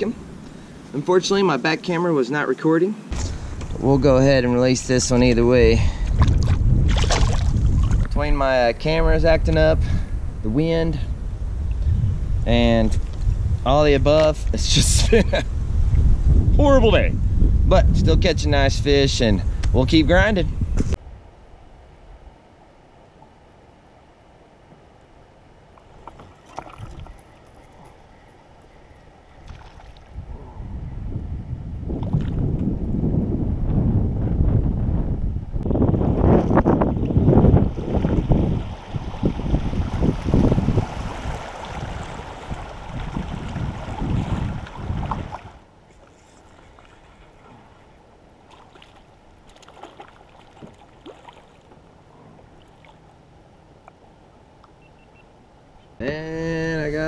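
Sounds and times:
wind on microphone: 3.1s - 21.3s, 26.0s - 47.8s
water rushing around kayak: 25.8s - 28.0s, 37.4s - 53.1s.

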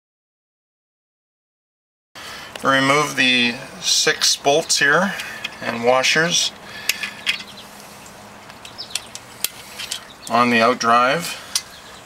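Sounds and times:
faint steady hum: 2.2s - 12.0s
bird chirps: 6.2s - 10.7s, 11.3s - 12.0s.

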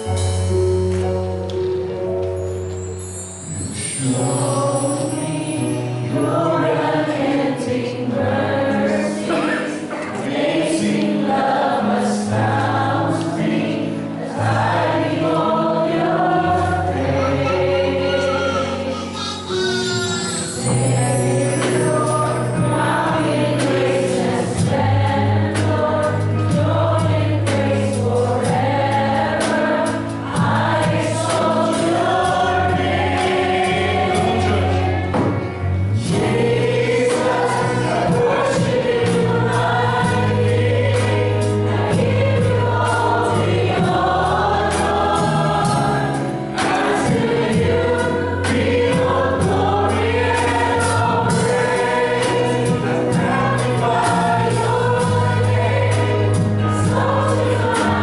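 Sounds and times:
worship band playing gospel song: 0.0s - 58.0s
several voices singing together: 3.5s - 58.0s.

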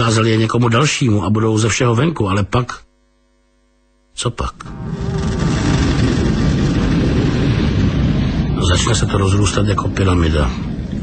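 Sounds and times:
loud low rumbling: 4.6s - 11.0s.

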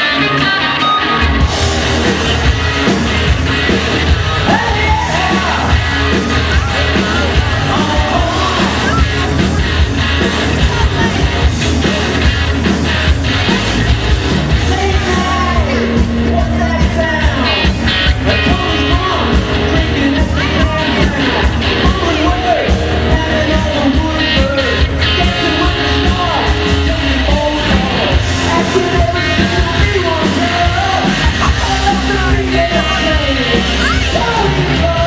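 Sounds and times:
bass guitar: 0.0s - 35.0s
drums: 0.0s - 35.0s
electric guitar: 0.0s - 35.0s
lead singer singing: 4.3s - 9.6s.

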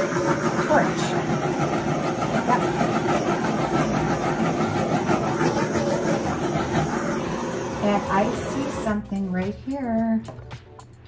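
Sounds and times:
torch flame hissing: 0.0s - 9.3s.

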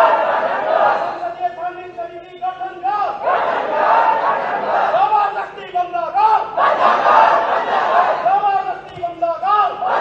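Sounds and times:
group chanting slogans: 0.0s - 1.3s, 3.1s - 5.6s, 6.4s - 8.4s, 9.6s - 10.0s.

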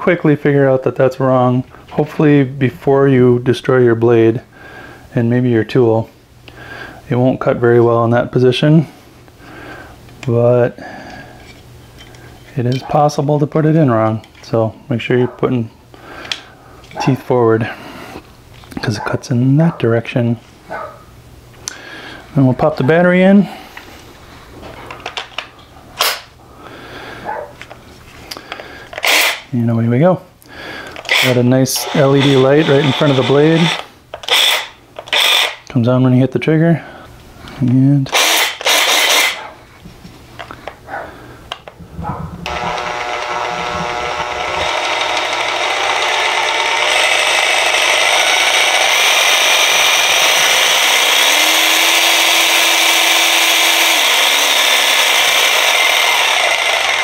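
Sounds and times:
jigsaw running: 29.0s - 29.5s, 31.0s - 35.6s, 38.1s - 39.4s, 42.4s - 57.0s
low steady hum: 39.5s - 47.8s.

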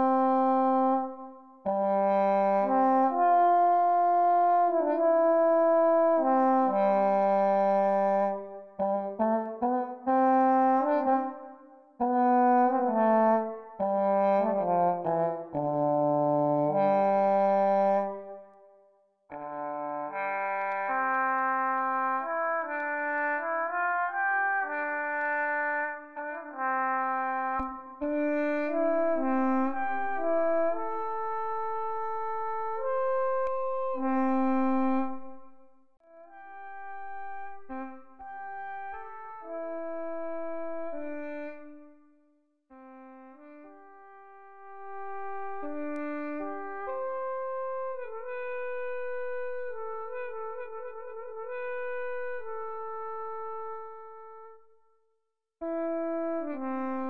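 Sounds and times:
solo french horn melody: 0.0s - 18.7s, 19.3s - 54.8s, 55.6s - 57.0s.

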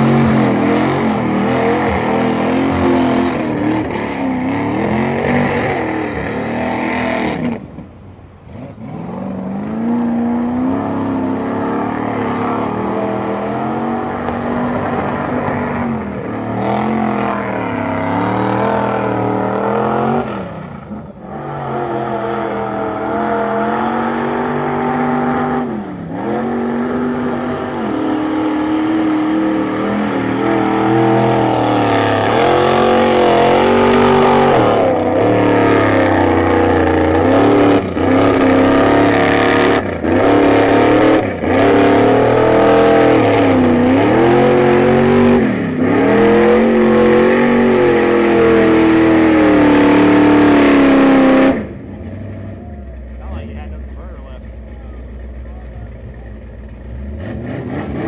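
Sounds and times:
truck churning through mud: 0.0s - 58.0s
truck engine revving hard: 0.0s - 58.0s.

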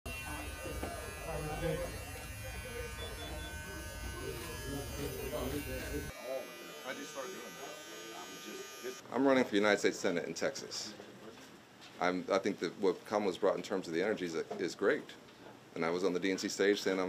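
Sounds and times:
electric shaver buzzing: 0.1s - 9.0s
voices in room: 0.1s - 17.0s.

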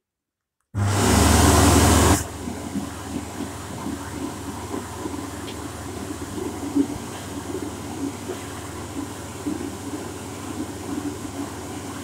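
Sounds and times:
hand dryer blowing: 0.8s - 12.0s.

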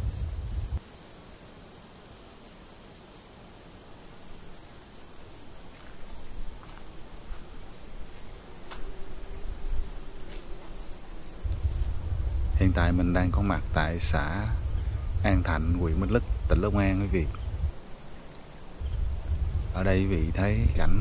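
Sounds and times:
crickets chirping: 0.0s - 21.0s
high-pitched cricket trill: 0.0s - 21.0s.

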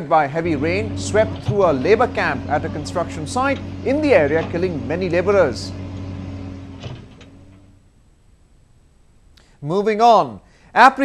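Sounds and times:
excavator engine humming: 0.1s - 8.0s.

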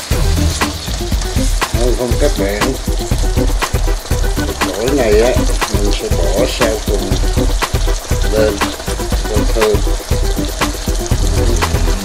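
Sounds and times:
background music: 0.0s - 12.0s
liver and onions sizzling in pan: 0.0s - 12.0s.

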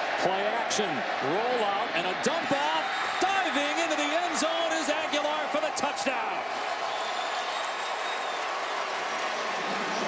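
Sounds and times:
man commentating: 0.0s - 6.5s
stadium crowd noise: 0.0s - 10.0s.

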